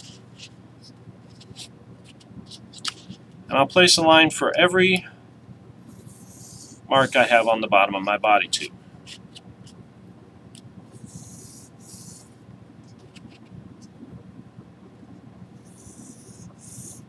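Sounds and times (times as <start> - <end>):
pencil scratching on tube: 1.3 - 3.2, 5.9 - 7.4, 11.0 - 12.3, 15.6 - 17.0.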